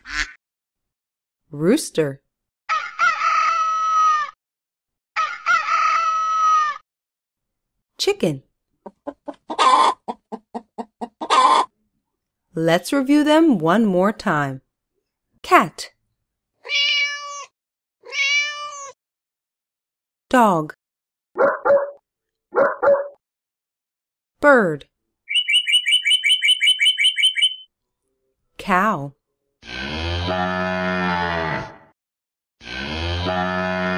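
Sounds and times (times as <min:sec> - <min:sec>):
hen clucking: 0:08.8 - 0:11.7
hen squawk: 0:25.3 - 0:27.6
bird chirping: 0:25.3 - 0:27.7.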